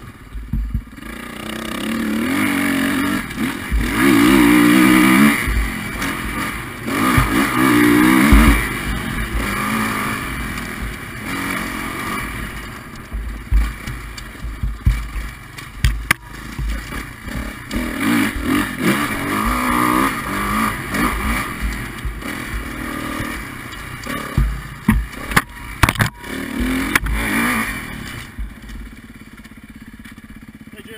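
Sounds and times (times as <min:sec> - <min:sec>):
dirt bike engine revving: 0:00.0 - 0:30.9
engine idling: 0:00.0 - 0:30.9
bike knocking on rocks: 0:00.3 - 0:01.0, 0:07.0 - 0:09.7, 0:12.6 - 0:27.2.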